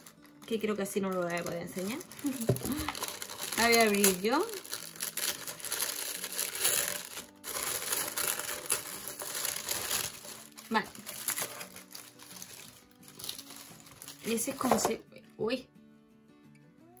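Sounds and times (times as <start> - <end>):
paper crinkling and rustling: 0.0 - 14.9.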